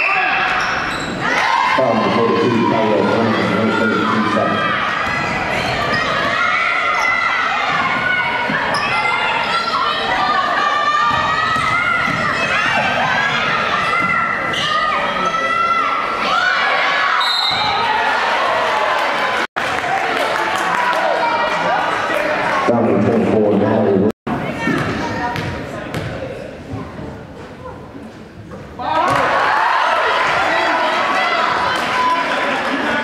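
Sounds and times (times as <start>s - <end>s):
shoes squeaking and players calling: 0.0s - 18.2s, 24.4s - 29.4s
spectators' voices: 0.0s - 33.0s
basketball bouncing on hardwood: 24.7s - 26.1s.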